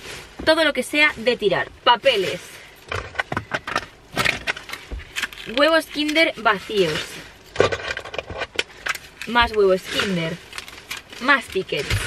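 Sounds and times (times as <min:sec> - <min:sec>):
plastic bag crinkling: 0:08.6 - 0:12.0
paper rubbish rustling: 0:09.3 - 0:12.0.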